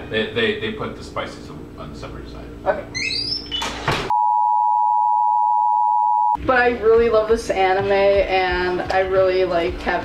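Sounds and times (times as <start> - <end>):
short high squeak: 3.0 - 3.8
steady test tone beep: 4.1 - 6.4.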